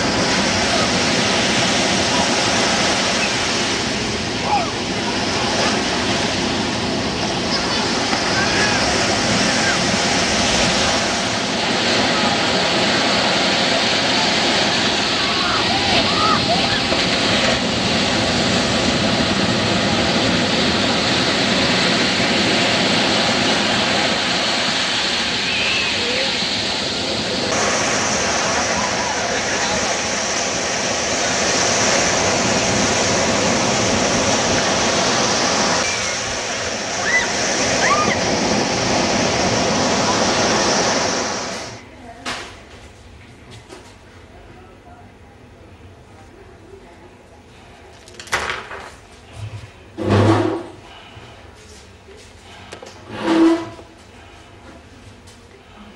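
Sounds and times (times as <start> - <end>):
ocean surf breaking: 0.0 - 41.9
distant voices: 0.0 - 42.7.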